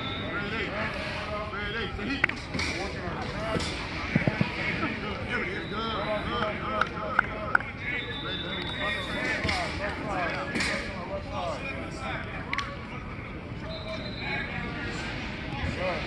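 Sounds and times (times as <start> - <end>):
people calling out and talking: 0.0 - 16.0.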